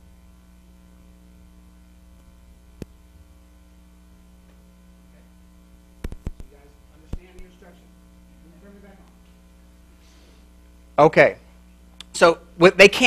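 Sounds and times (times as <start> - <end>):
electrical mains hum: 0.0 - 13.0
sharp click: 6.0 - 6.5.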